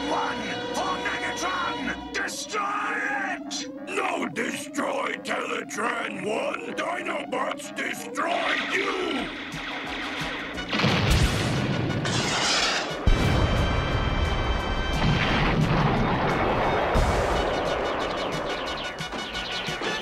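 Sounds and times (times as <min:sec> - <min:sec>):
dramatic action music: 0:00.0 - 0:20.0
heavy booming blasts: 0:08.5 - 0:20.0
cartoon energy weapon fire: 0:10.7 - 0:13.4.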